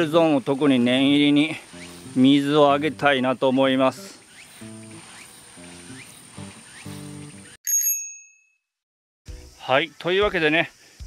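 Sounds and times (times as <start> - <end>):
hose spray nozzle hissing: 0.6 - 3.2, 3.8 - 7.5
soft background music: 1.0 - 3.9
bright bell-like chime: 7.6 - 8.6.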